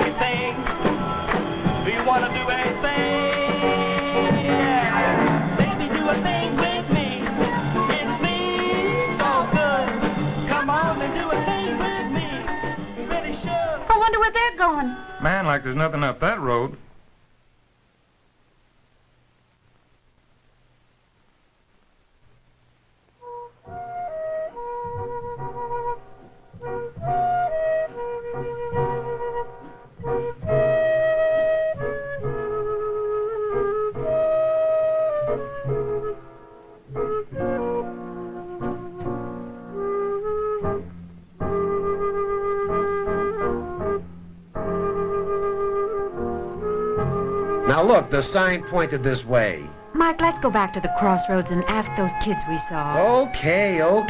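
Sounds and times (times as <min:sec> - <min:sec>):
flute-like woodwind melody: 0:23.2 - 0:49.0, 0:50.1 - 0:54.0.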